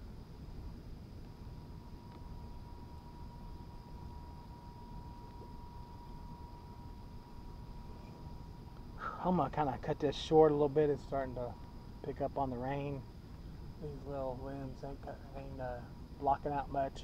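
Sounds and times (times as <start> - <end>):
low steady rumble: 0.0 - 17.0.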